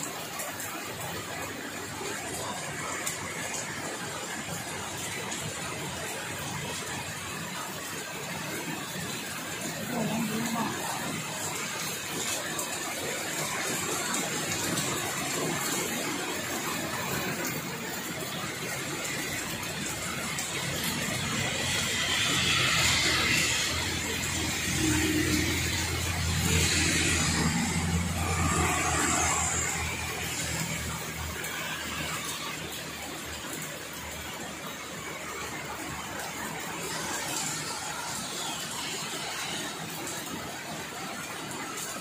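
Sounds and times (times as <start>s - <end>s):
heavy rain pouring: 0.0s - 42.0s
tyres hissing through water: 1.2s - 41.6s
vehicle engine drone: 13.3s - 41.2s.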